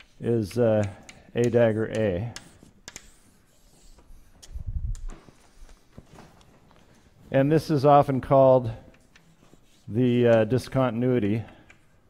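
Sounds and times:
chalk tapping on blackboard: 0:00.0 - 0:04.4
chalk scraping on blackboard: 0:01.4 - 0:04.4, 0:09.0 - 0:10.2.

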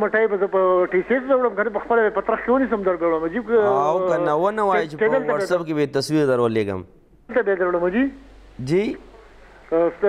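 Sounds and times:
person speaking over telephone: 0:03.6 - 0:05.6.

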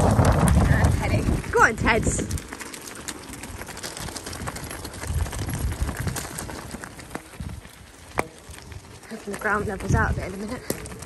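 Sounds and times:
bicycle tyres rolling on gravel: 0:00.0 - 0:11.0
low rumbles: 0:00.0 - 0:11.0.

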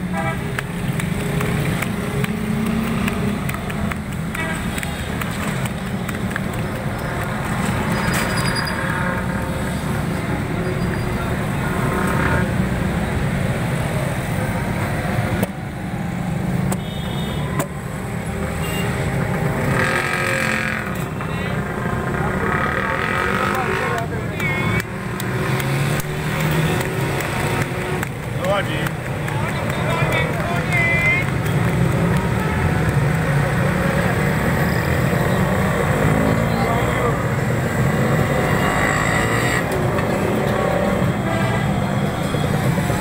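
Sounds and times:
traffic hum: 0:00.0 - 0:43.0
people talking: 0:20.2 - 0:25.0, 0:28.3 - 0:37.4.

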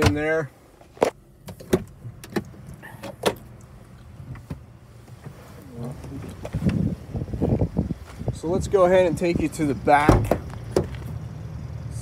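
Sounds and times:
rustling: 0:04.0 - 0:08.3.

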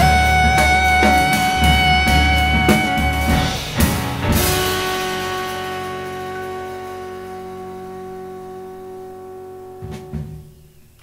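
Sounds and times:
jazz quartet final chord: 0:00.0 - 0:10.6
short sharp thump: 0:09.8 - 0:10.6.

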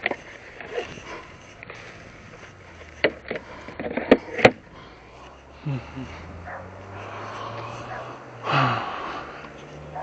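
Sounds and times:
lawn mower clicks and knocks: 0:01.6 - 0:04.6.

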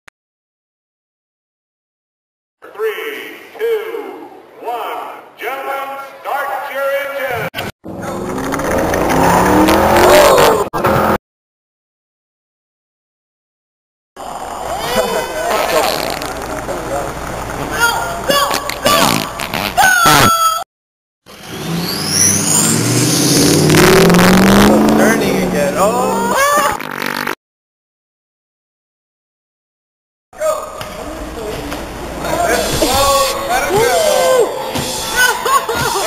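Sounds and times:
race car engine accelerating: 0:07.8 - 0:11.2, 0:21.3 - 0:26.2
person speaking: 0:24.6 - 0:26.4, 0:32.2 - 0:36.0.

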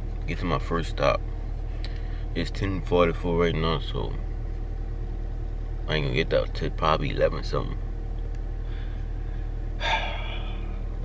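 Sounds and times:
car engine idling: 0:00.0 - 0:11.0
man breathing heavily: 0:08.6 - 0:11.0.

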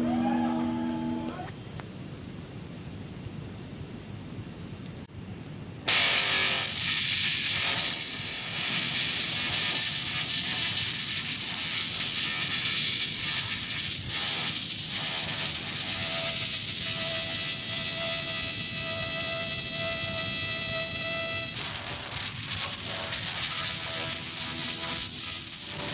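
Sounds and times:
noisy live punk band: 0:00.0 - 0:01.5
held tone: 0:00.0 - 0:01.6.

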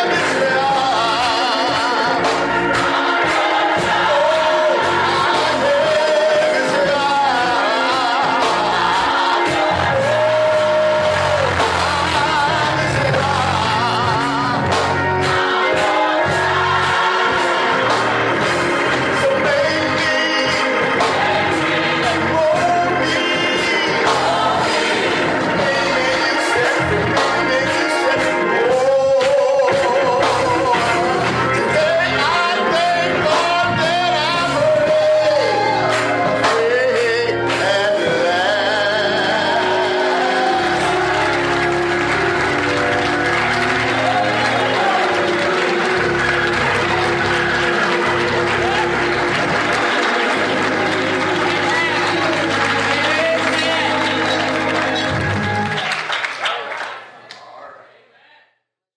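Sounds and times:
audience applause: 0:00.0 - 0:23.4, 0:34.5 - 0:57.2
organ chords: 0:00.0 - 0:57.1
gospel singing: 0:00.0 - 0:58.3.

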